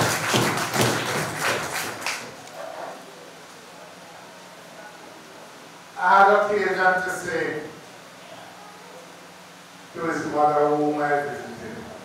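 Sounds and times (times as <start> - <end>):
people clapping slowly: 0.0 - 2.6.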